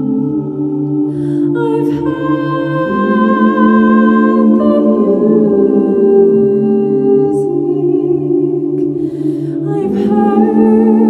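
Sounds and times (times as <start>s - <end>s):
sustained vocal tones: 0.0s - 11.0s.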